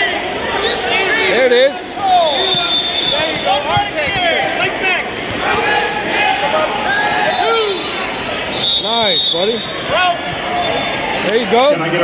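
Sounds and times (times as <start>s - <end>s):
people shouting encouragement: 0.0s - 8.1s
crowd hubbub: 0.0s - 12.0s.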